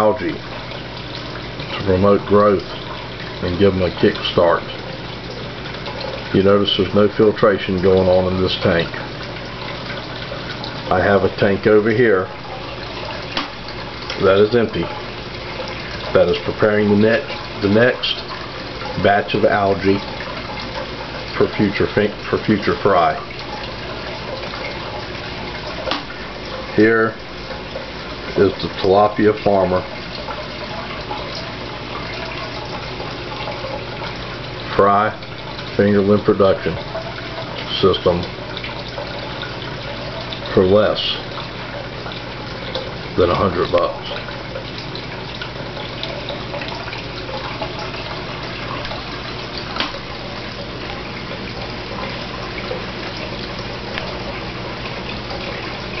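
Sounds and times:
low steady hum: 0:00.0 - 0:56.0
running water rushing: 0:00.0 - 0:56.0
small drips and clicks: 0:00.0 - 0:56.0.

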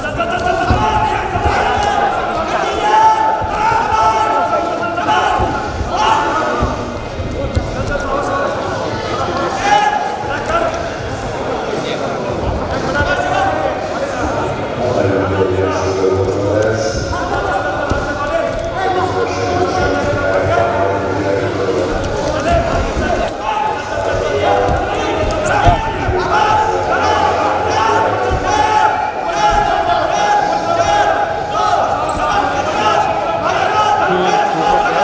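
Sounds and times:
people shouting: 0:00.0 - 0:07.0, 0:22.2 - 0:35.0.

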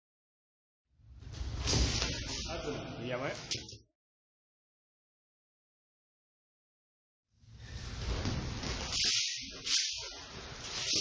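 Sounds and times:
short hissy swishes: 0:08.6 - 0:11.0.

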